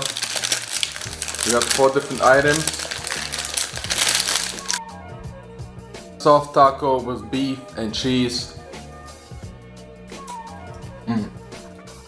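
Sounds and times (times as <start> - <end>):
paper bag crinkling: 0.0 - 4.8
quiet background music: 0.0 - 12.0.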